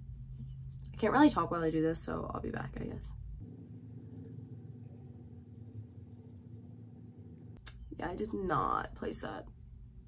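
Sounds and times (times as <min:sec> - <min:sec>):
makeup brush scratching on skin: 0:00.0 - 0:07.6
low steady hum: 0:00.0 - 0:10.0.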